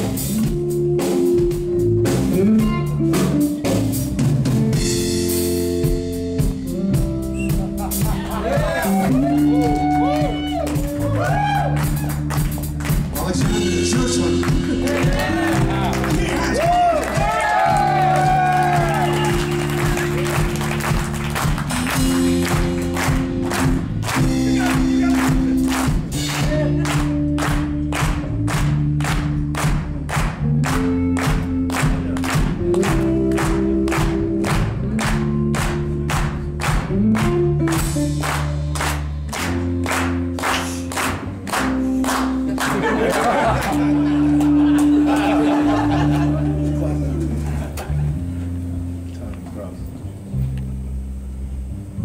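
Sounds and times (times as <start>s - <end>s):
drum kit beat: 0.0s - 48.0s
bass guitar: 0.0s - 52.0s
electric guitar chords: 0.0s - 52.0s.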